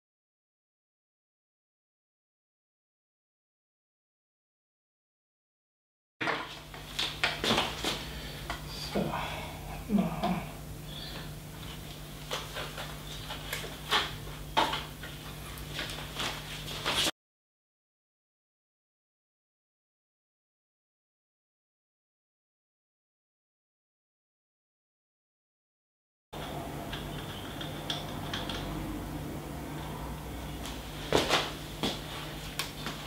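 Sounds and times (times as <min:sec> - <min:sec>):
steady low hum: 0:06.5 - 0:17.1, 0:26.4 - 0:33.0.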